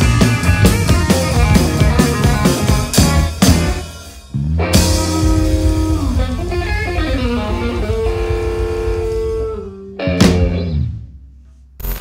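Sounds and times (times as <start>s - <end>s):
blues-rock band playing: 0.0s - 11.1s.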